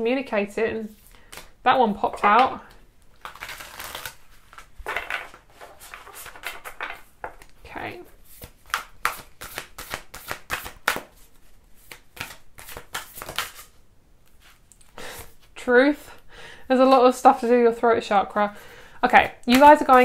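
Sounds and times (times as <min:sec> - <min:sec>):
cards sliding rustles: 0:03.2 - 0:07.5, 0:08.2 - 0:15.5.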